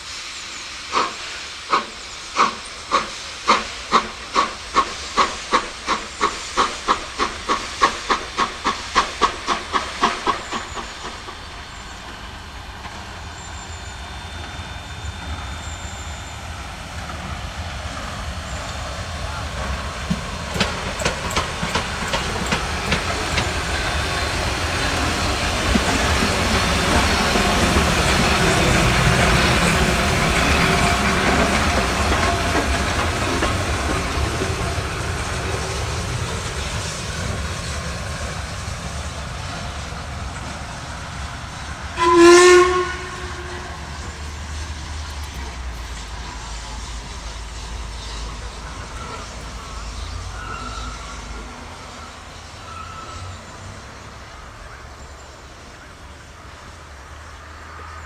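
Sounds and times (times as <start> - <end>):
steam locomotive exhaust beats: 0.0 - 57.9
steam hiss: 0.0 - 58.0
train rolling noise: 0.0 - 58.0.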